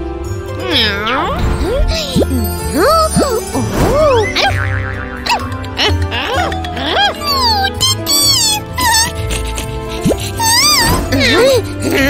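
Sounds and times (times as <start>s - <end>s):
light cartoon background music: 0.0s - 12.0s.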